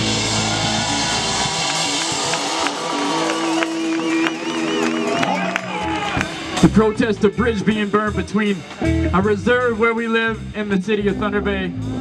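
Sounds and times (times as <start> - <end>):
bass: 0.0 - 12.0
drums: 0.0 - 12.0.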